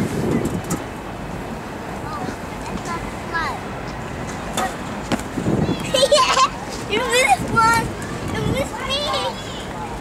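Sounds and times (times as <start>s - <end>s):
distant city traffic rumble: 0.0s - 10.0s.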